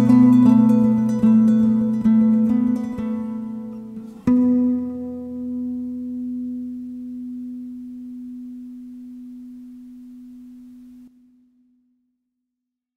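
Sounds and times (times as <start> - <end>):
classical guitar note ringing: 0.0 - 11.2.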